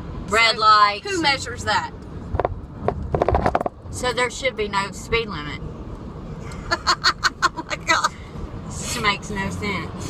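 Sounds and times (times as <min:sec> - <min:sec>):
car cabin rumble on road: 0:00.0 - 0:10.0
woman laughing: 0:06.6 - 0:08.2.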